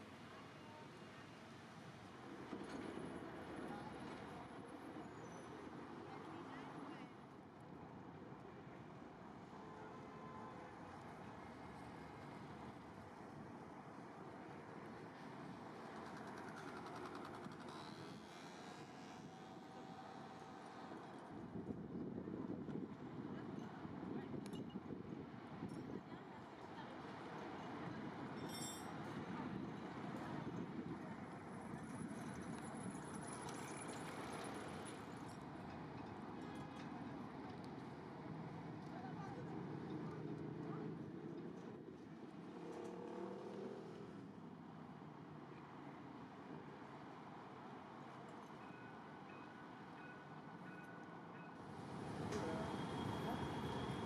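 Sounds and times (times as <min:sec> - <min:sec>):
city traffic noise: 0:00.0 - 0:54.0.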